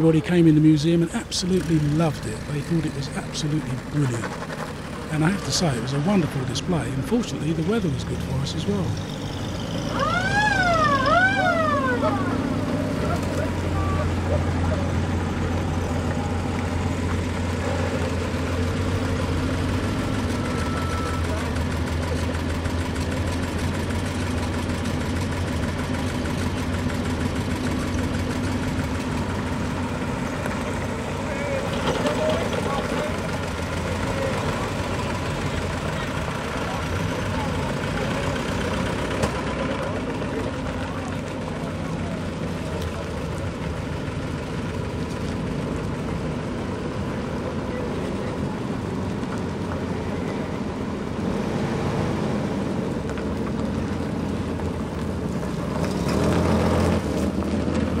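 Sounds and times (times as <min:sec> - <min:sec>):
vehicle engines idling at low revs: 0:00.0 - 0:58.0.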